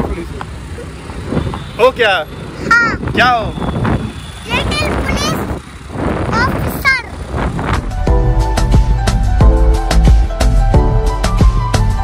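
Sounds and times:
child calling out: 0:02.6 - 0:03.0, 0:04.5 - 0:05.6, 0:06.3 - 0:07.2
wind rumble on microphone: 0:02.7 - 0:09.3
motor scooter running: 0:04.2 - 0:07.9.

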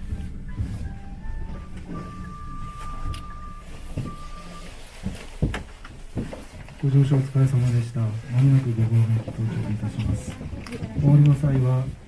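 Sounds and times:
steady high tone: 0:00.0 - 0:05.1
cable car rumbling: 0:00.0 - 0:12.0.

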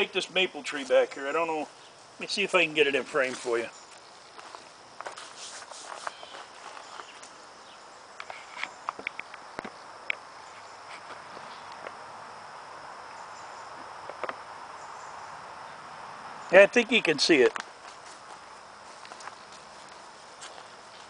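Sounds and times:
footsteps in leaf litter: 0:02.4 - 0:07.2, 0:17.8 - 0:21.0.

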